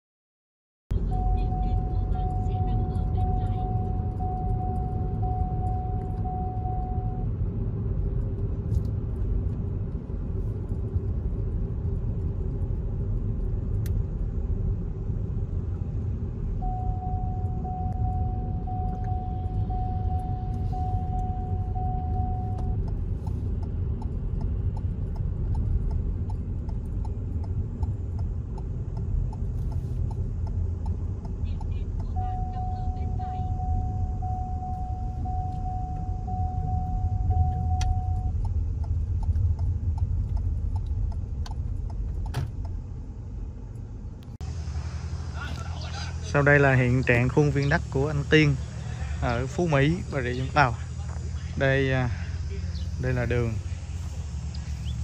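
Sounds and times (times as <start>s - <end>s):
road and engine rumble in car: 0.9s - 55.0s
electronic beep: 1.0s - 7.2s, 16.6s - 22.8s, 32.1s - 38.3s.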